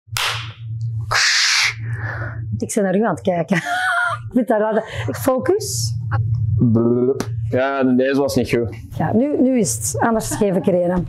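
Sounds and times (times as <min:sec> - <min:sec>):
steady low hum: 0:00.1 - 0:11.0.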